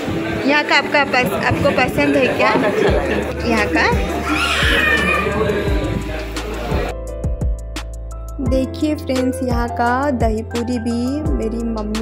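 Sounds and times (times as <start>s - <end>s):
background music: 0.0s - 12.0s
voices talking: 0.5s - 6.9s
high wavering cry: 4.2s - 5.6s.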